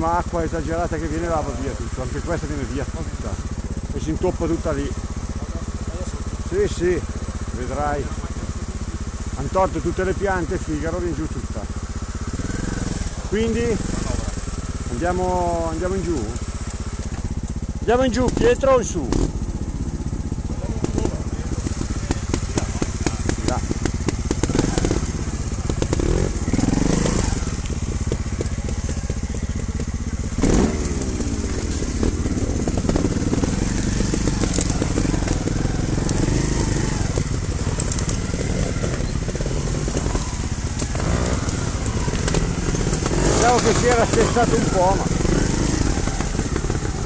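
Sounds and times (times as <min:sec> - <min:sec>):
motorcycle engines idling: 0:00.0 - 0:47.0.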